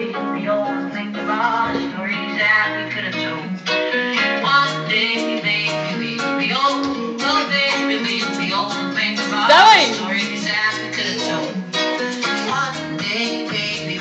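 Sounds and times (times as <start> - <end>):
pop song from tv: 0.0 - 14.0.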